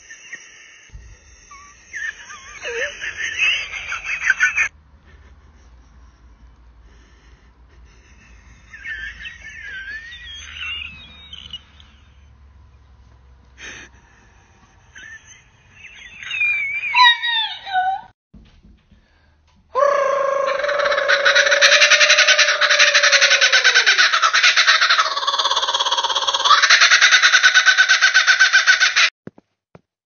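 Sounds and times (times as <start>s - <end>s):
kookaburra calling: 8.4s - 12.1s, 15.0s - 18.0s, 19.8s - 29.1s
high-pitched human cries: 16.8s - 18.1s, 19.8s - 24.1s.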